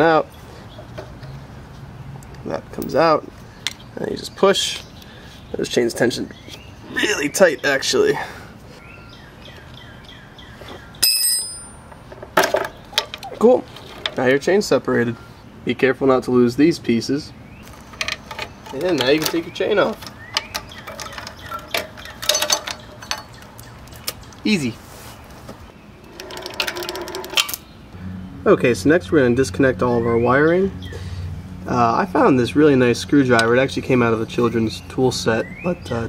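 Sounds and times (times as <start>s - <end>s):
sharp metallic ping: 11.0s - 11.9s
drive chain rattling over sprocket: 17.7s - 23.4s, 26.1s - 27.6s.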